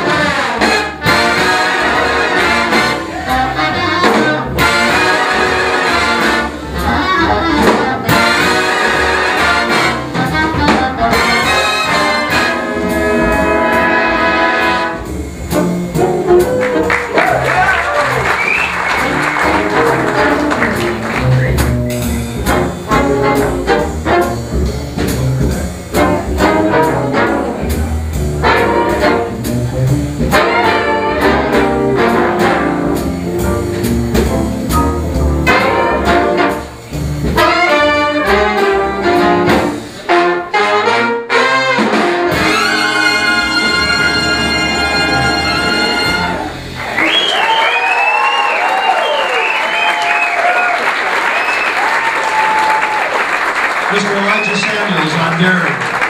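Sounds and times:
big band playing swing: 0.0s - 56.0s
audience applause and cheers: 16.2s - 22.4s, 42.5s - 56.0s.

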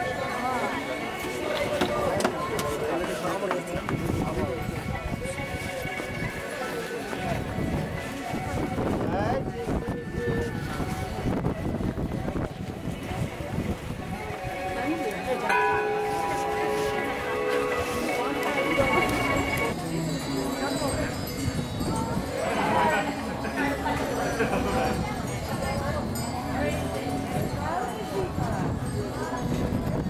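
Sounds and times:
murmur of voices: 0.0s - 30.0s
people talking in background: 0.0s - 30.0s
metal temple bell ringing: 14.7s - 23.1s.

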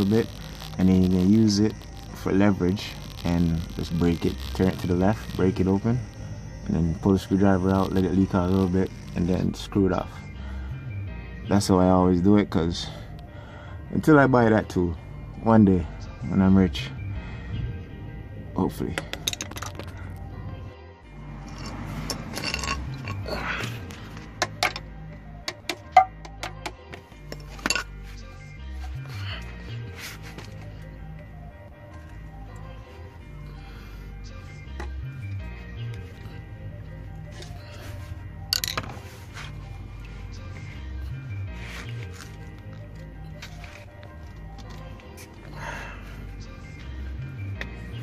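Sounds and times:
background music: 0.0s - 48.0s
metallic clinks and knocks: 21.4s - 23.3s.

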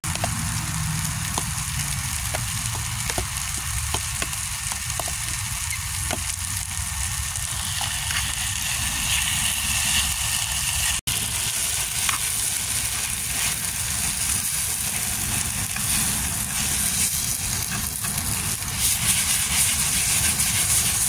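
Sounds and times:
low rumble of fire: 0.0s - 21.0s
vegetables sizzling in a pan: 0.1s - 21.0s
spatula scraping pan: 15.0s - 21.0s.

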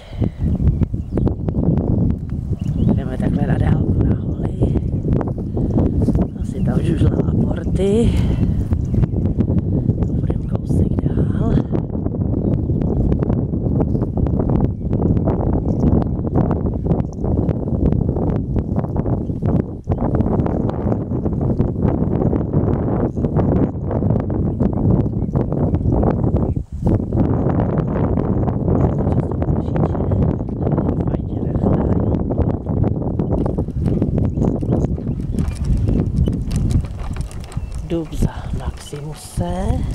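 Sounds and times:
strong wind buffeting microphone: 0.0s - 39.9s.

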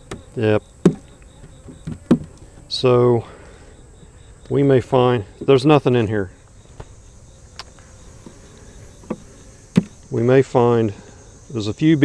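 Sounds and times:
honey bees buzzing: 0.0s - 12.0s.

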